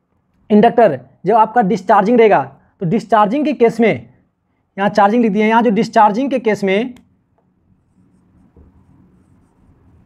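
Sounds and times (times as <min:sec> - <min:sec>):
marker pen scratching on whiteboard: 0:07.7 - 0:10.0.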